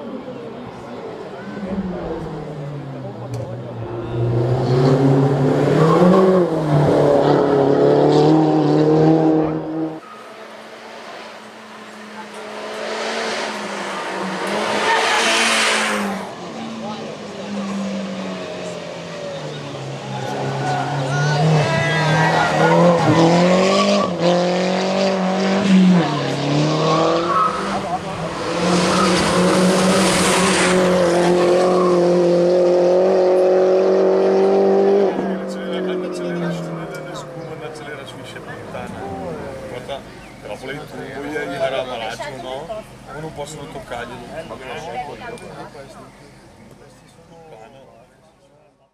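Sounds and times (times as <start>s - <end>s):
race car engine revving: 0.7s - 44.8s.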